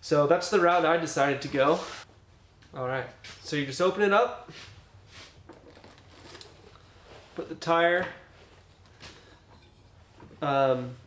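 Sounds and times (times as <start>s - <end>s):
soft handling knocks and rustles: 4.5s - 11.0s.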